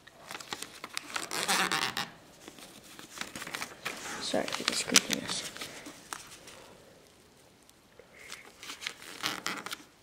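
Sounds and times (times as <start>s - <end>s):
paper crinkling and rustling: 0.0s - 7.2s, 8.2s - 10.0s
paper squeaky scrapes: 1.1s - 2.1s, 8.3s - 9.9s.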